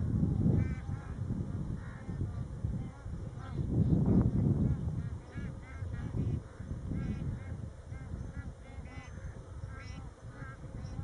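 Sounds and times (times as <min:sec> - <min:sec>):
geese honking: 0:04.8 - 0:11.0.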